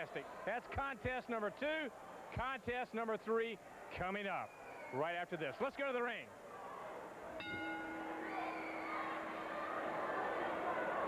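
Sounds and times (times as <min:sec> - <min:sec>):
arena crowd noise: 0:00.0 - 0:11.0
ring bell struck: 0:07.4 - 0:11.0.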